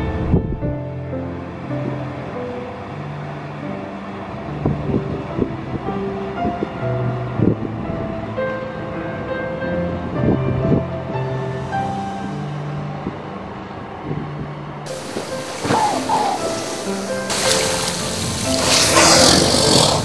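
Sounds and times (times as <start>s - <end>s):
background music of held notes: 14.9s - 20.0s.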